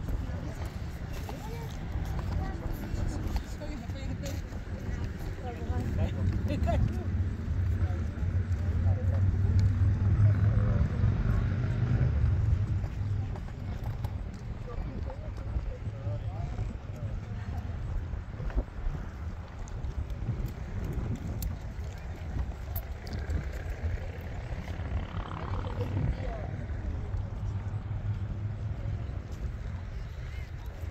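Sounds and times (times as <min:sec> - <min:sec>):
faint voices: 0:00.0 - 0:30.9
wind rumble on microphone: 0:00.0 - 0:30.9.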